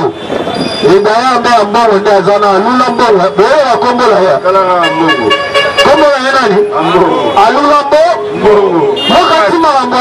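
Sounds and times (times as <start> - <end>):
man talking over microphone: 0.0 - 0.2, 0.8 - 10.0
vehicle horn: 4.8 - 6.1, 8.9 - 9.5.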